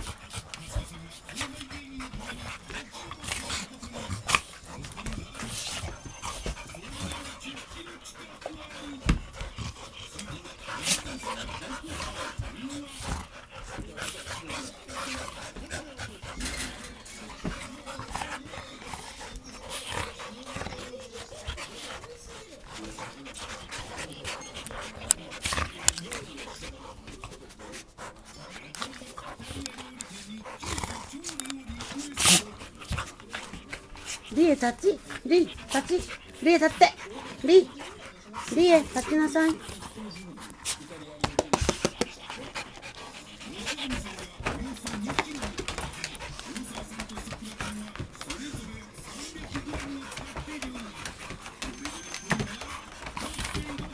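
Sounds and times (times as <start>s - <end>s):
dogs panting: 0.0s - 53.9s
dogs vocalizing: 0.0s - 53.9s.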